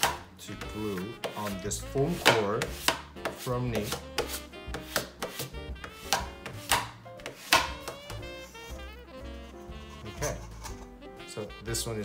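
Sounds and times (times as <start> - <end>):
swing jazz music: 0.0 - 12.0
bone folder scraping paper: 0.8 - 8.7.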